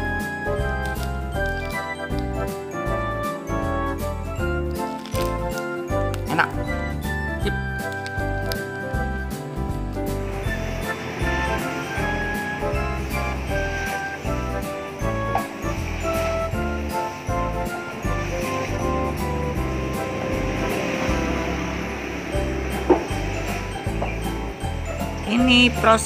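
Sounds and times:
background music: 0.0 - 26.0
oil hissing from deep-frying: 7.0 - 26.0.

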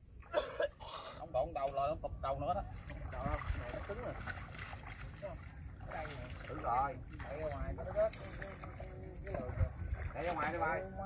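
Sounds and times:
men talking faintly: 2.6 - 11.0.

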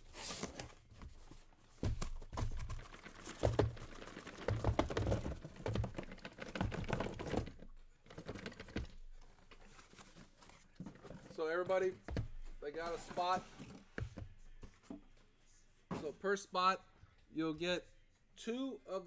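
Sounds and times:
cardboard rustling and scraping: 0.0 - 15.0.

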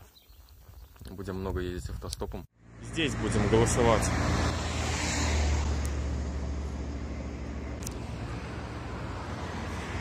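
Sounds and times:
vehicle passing close by: 2.6 - 10.0.

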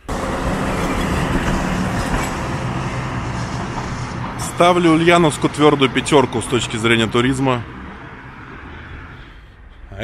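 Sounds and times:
loud street traffic: 0.0 - 10.0.

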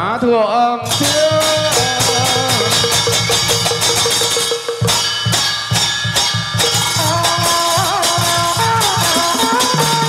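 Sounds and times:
bright percussion: 0.9 - 10.0
quick drum strokes: 0.9 - 10.0
held wavering melody: 1.8 - 5.3.

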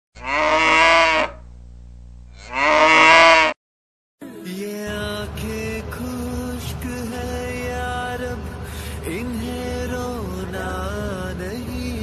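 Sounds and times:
cow mooing: 0.2 - 1.4, 2.3 - 3.6.

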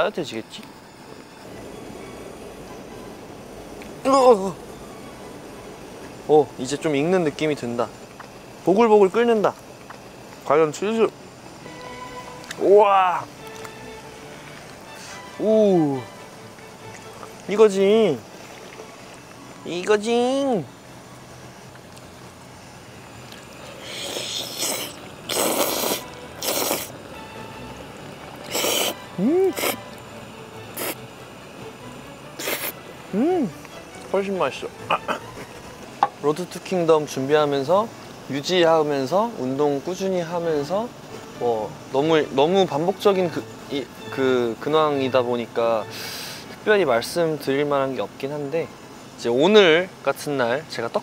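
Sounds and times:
food simmering in a frying pan: 0.0 - 51.0
person slurping food: 23.7 - 26.9, 28.4 - 29.8, 30.8 - 31.0, 32.4 - 32.8.

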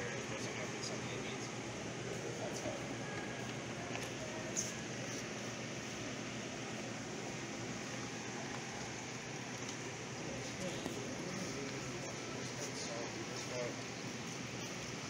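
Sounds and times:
background hiss and hum: 0.0 - 15.0
faint distant voices: 0.0 - 15.0.

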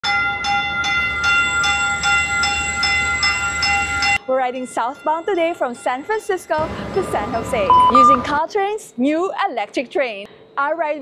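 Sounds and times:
train warning bell ringing: 0.0 - 8.4.

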